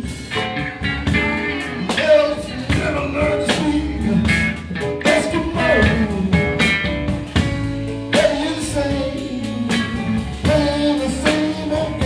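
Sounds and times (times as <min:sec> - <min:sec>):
live blues rock band: 0:00.0 - 0:12.0
singer singing: 0:00.0 - 0:12.0.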